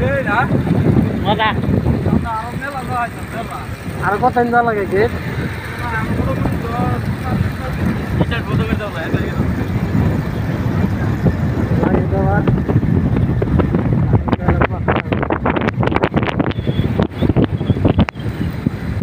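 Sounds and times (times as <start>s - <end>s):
wind buffeting a microphone: 0.0s - 19.0s.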